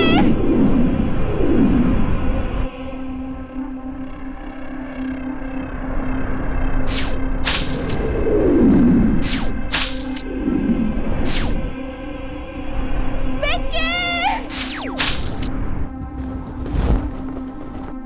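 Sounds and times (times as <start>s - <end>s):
tense background music: 0.0s - 18.0s.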